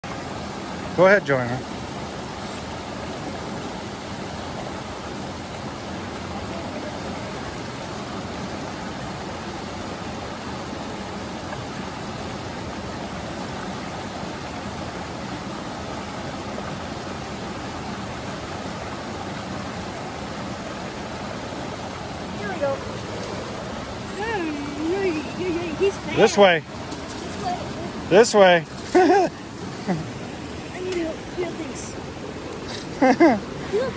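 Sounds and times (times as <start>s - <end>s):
creek water rushing over rocks: 0.0s - 33.9s.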